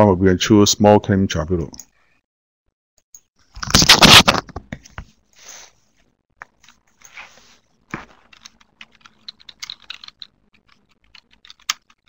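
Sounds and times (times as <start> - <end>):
typing on computer keyboard: 8.2 - 12.0.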